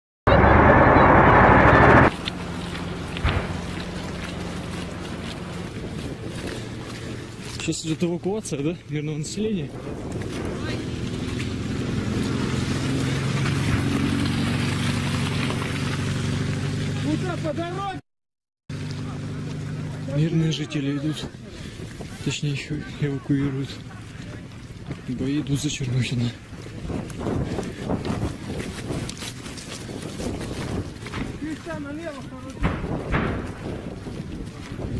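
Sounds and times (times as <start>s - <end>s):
rushing noise: 0.3s - 2.3s
vehicle engine droning: 0.3s - 7.6s, 9.8s - 18.0s, 18.7s - 21.8s
wind buffeting microphone: 0.3s - 16.3s, 21.0s - 34.9s.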